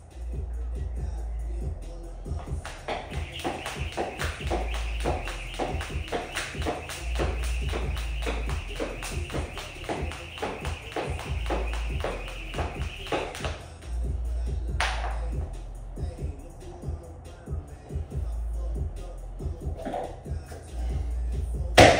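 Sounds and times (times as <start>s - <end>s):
music with bass beat: 0.0s - 21.9s
jump rope slapping floor: 2.4s - 13.6s.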